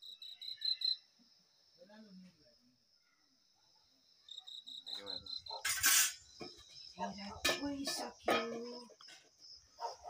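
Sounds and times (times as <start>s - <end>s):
crickets chirping: 0.0s - 10.0s
short loud hiss: 5.7s - 6.3s.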